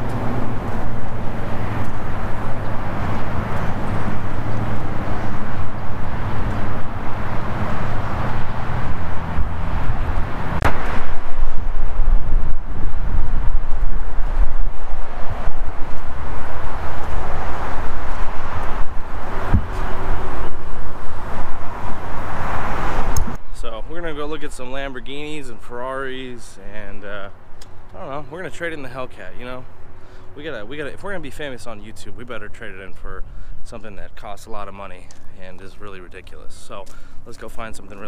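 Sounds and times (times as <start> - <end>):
low engine hum: 0.0 - 23.4
wind on microphone: 0.0 - 23.5.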